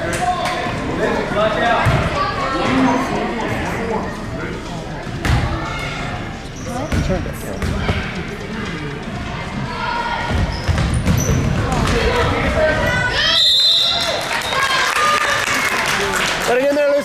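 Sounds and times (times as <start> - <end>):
basketball bouncing on wooden floor: 6.9 - 8.1.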